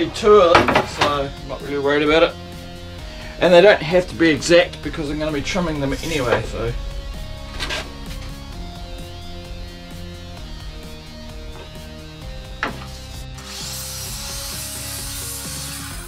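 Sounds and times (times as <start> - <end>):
background music sustained notes: 0.0 - 16.0
wood scraping on saw table: 7.5 - 14.2.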